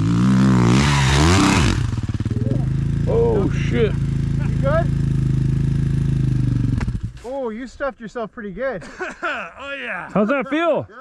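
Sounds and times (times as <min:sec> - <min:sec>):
dirt bike engine idling: 0:00.0 - 0:07.2.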